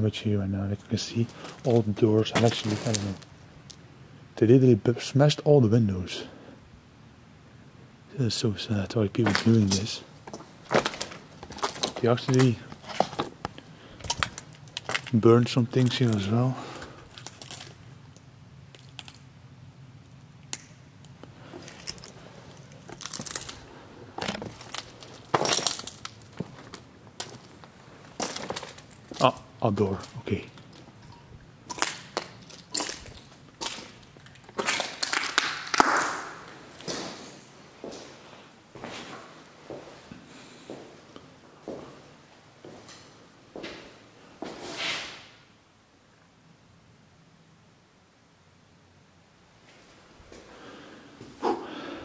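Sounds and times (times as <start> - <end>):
footsteps crunching broken glass: 1.1 - 3.3, 9.2 - 17.9, 21.4 - 38.0.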